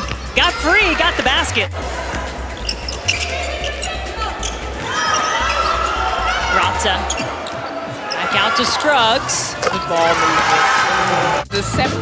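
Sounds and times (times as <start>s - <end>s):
arena music: 0.0s - 12.0s
shoe squeaks on floor: 2.6s - 5.8s, 7.0s - 8.3s.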